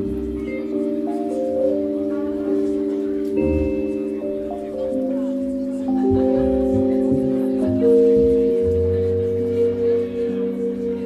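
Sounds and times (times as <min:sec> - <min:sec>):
live band holding chords: 0:00.0 - 0:11.0.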